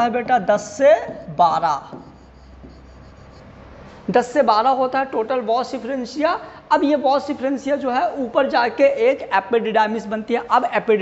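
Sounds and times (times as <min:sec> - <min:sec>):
low hum: 0:00.7 - 0:04.2.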